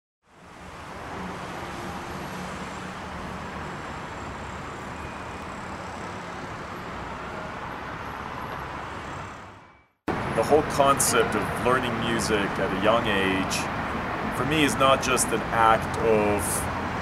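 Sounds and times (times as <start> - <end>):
distant city traffic hum: 0.2 - 17.0.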